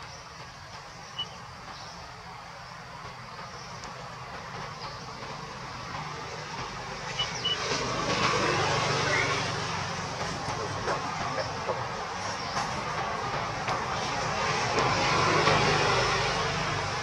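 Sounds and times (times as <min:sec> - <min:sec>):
outdoor rumble and hiss: 0:00.0 - 0:17.0.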